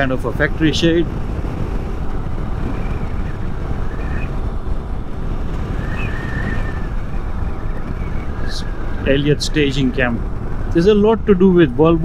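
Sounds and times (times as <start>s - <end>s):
motorcycle engine and road rumble: 0.0s - 12.0s
wind rushing over microphone: 0.0s - 12.0s.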